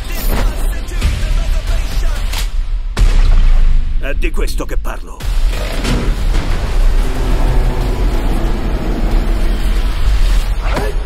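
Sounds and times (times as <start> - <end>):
loud low rumble: 6.1 - 10.6.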